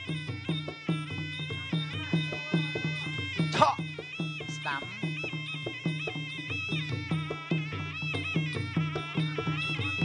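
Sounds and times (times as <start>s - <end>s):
reedy oboe melody: 0.7s - 10.0s.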